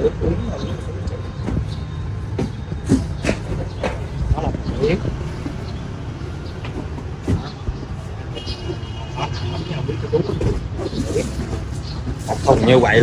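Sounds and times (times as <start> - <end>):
boxes knocking: 1.3 - 8.0.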